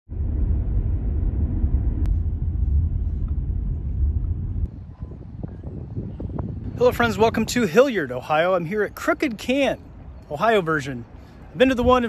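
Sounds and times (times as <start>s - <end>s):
steady low rumble: 0.0s - 7.7s.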